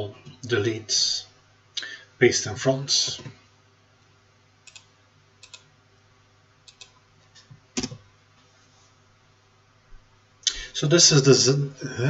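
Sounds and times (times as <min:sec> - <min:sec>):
computer mouse clicks: 0:04.6 - 0:05.7, 0:06.7 - 0:07.0.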